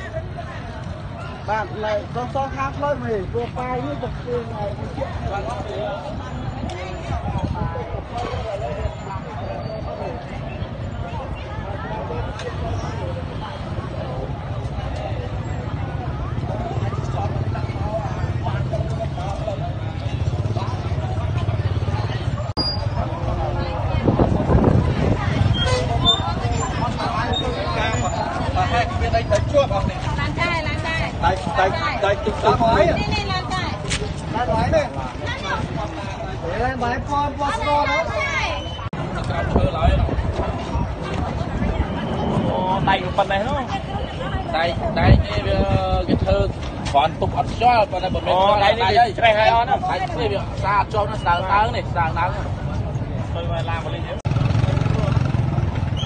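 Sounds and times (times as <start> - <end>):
people talking: 0.0 - 56.0.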